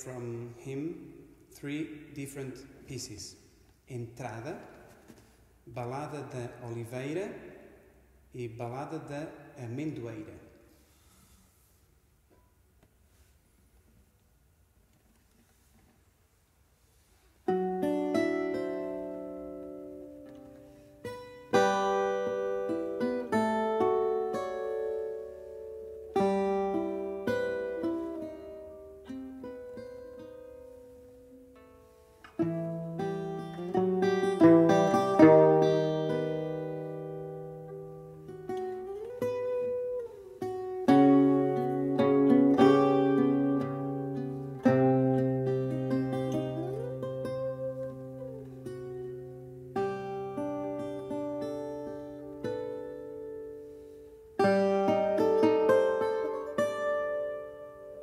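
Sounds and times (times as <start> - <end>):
plucked guitars playing together: 17.5 - 58.0.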